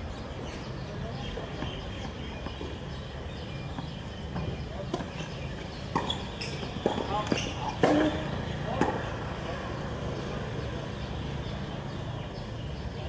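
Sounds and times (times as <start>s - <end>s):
tennis ball bouncing on court: 3.7s - 9.4s.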